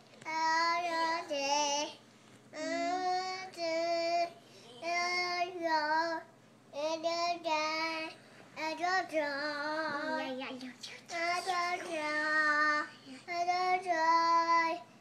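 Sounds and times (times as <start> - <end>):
little girl singing: 0.2 - 2.0, 2.6 - 14.9.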